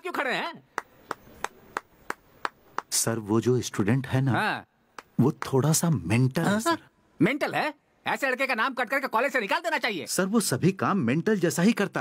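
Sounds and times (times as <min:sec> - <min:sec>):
person clapping slowly: 0:00.8 - 0:03.0, 0:04.9 - 0:05.6.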